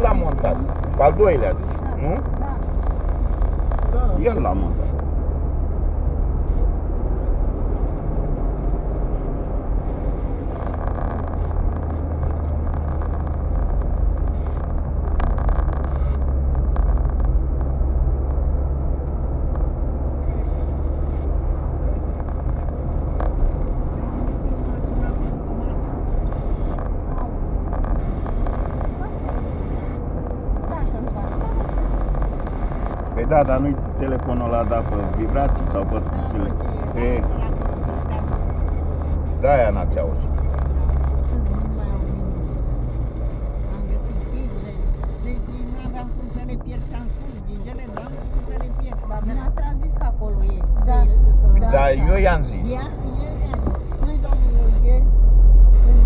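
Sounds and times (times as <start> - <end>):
car engine and tyre rumble: 0.0 - 56.0.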